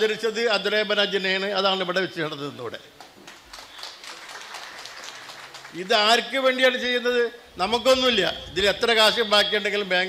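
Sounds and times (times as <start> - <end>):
faint hall noise: 0.0 - 10.0
low thump: 7.5 - 9.2.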